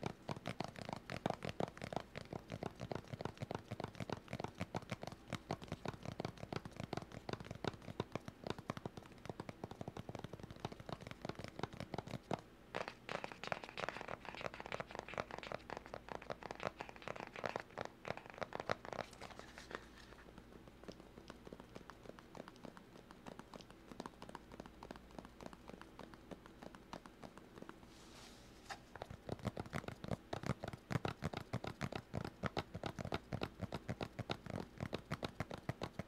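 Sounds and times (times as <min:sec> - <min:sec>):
tapping and scratching: 0:00.0 - 0:27.8, 0:28.6 - 0:36.0.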